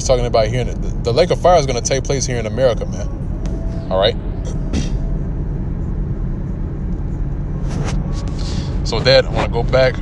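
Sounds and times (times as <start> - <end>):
low background rumble: 0.0 - 10.0.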